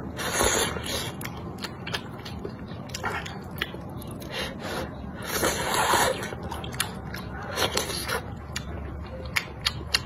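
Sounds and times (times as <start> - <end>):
wet chewing clicks: 0.2 - 4.4, 5.2 - 10.0
person slurping noodles: 5.2 - 6.4.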